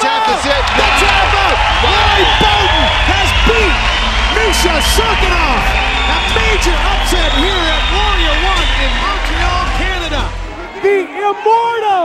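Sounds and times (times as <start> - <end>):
background music: 0.0 - 12.0
excited shouting voices: 0.0 - 12.0.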